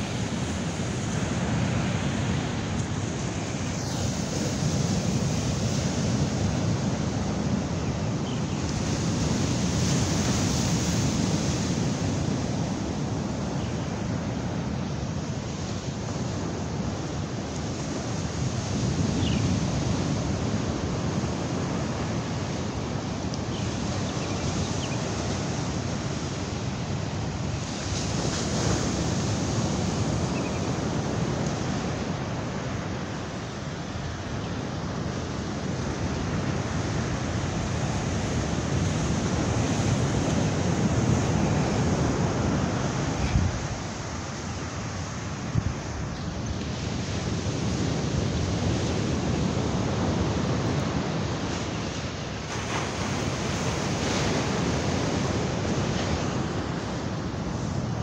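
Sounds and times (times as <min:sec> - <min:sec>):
ocean surf breaking on beach: 0:00.0 - 0:58.0
wind buffeting microphone: 0:00.0 - 0:58.0.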